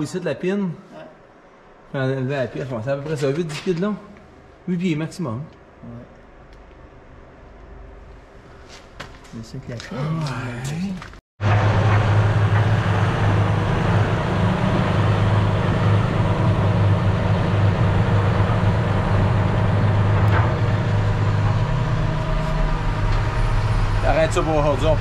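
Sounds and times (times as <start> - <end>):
vehicle engine running steadily: 11.4 - 25.0.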